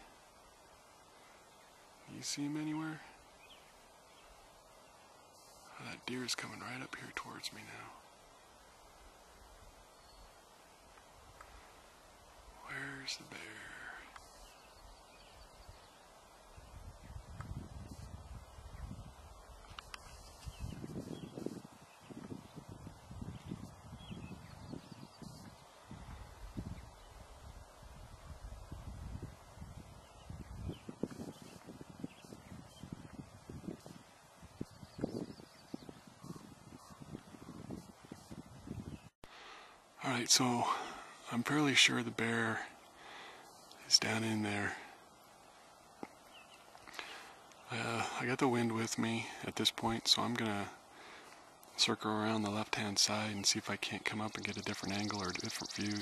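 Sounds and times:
wind buffeting microphone: 16.5s - 39.1s.

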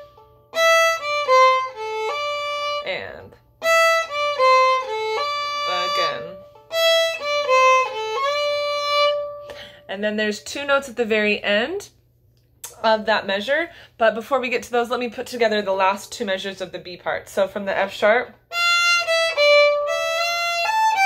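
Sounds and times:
solo fiddle: 0.0s - 9.7s, 18.5s - 21.0s.

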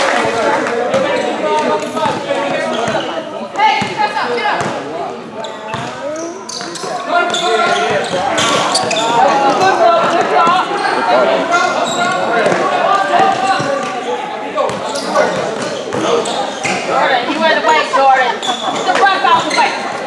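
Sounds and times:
voices calling out and chattering: 0.0s - 20.0s
basketball bouncing on court: 5.7s - 6.0s.

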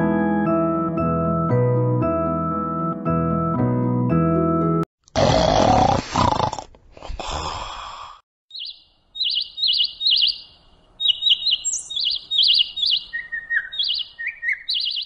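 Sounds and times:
small birds chirping: 8.5s - 15.0s.

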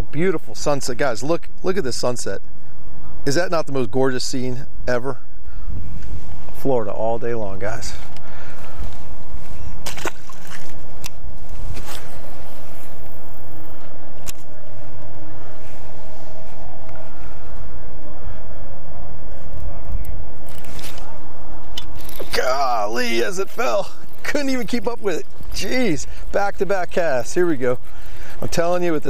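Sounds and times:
steady low rumble: 0.0s - 29.0s.

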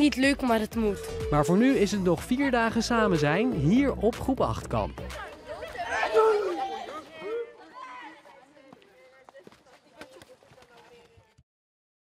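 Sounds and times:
children chattering and calling out: 0.0s - 1.9s, 4.6s - 11.4s.

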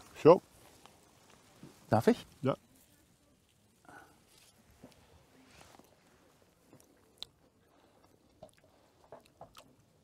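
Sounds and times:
chewing grape: 3.9s - 10.0s.

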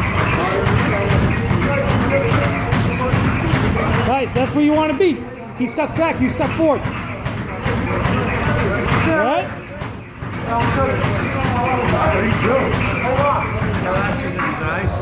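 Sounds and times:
background din: 0.0s - 15.0s
indistinct voices talking: 0.0s - 15.0s.

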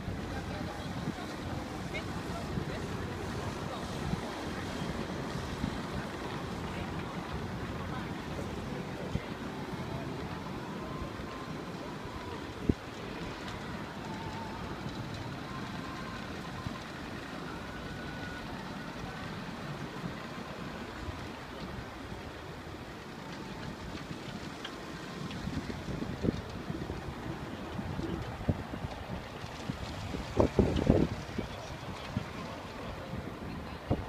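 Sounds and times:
distant people: 0.0s - 34.0s
traffic hum: 0.0s - 34.0s
wind buffeting microphone: 0.0s - 34.0s.

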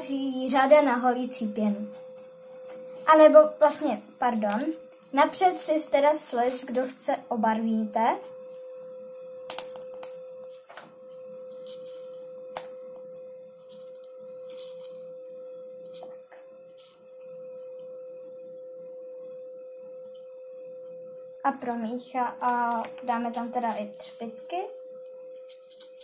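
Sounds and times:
steady hum: 0.0s - 26.0s.

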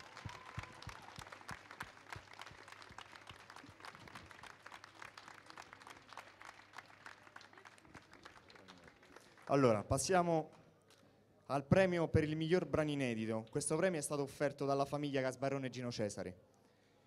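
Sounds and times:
crowd applauding: 0.0s - 9.8s.

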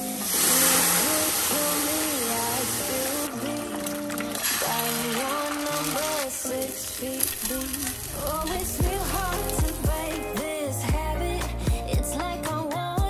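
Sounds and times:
water hissing in a hot pan: 0.0s - 10.3s
background music with light melody: 0.0s - 13.0s.

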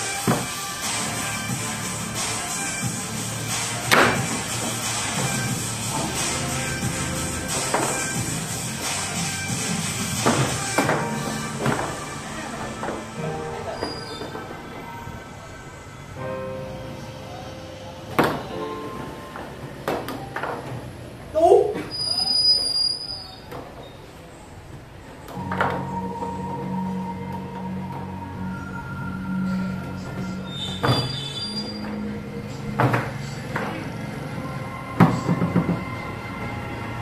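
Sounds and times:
music with held notes: 0.0s - 20.8s, 25.4s - 37.0s
foosball clacks: 7.3s - 8.2s, 10.1s - 12.0s.

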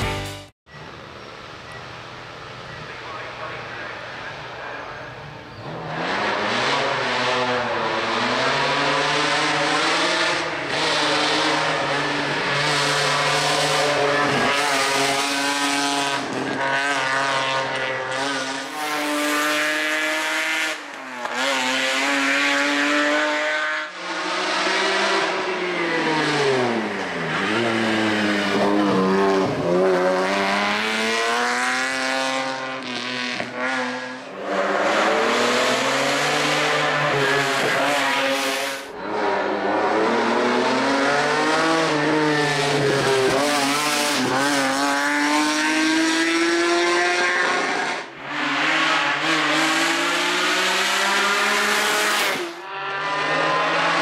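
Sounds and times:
race car engine revving: 3.2s - 54.0s.

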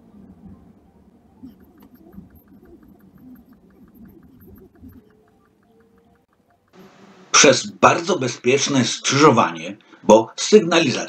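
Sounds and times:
quick regular ticking: 1.4s - 7.1s.

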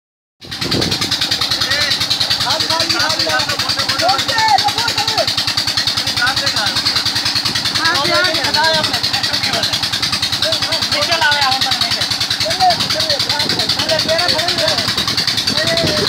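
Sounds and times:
engine running steadily: 0.4s - 16.0s
water splashing and gushing: 0.4s - 16.0s.

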